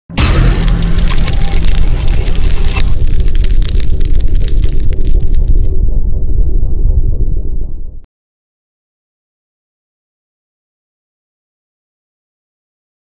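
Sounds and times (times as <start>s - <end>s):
loud hit: 0.1s - 8.0s
heavy bass rumble: 0.1s - 8.1s
high crackling sparkle: 0.2s - 5.8s.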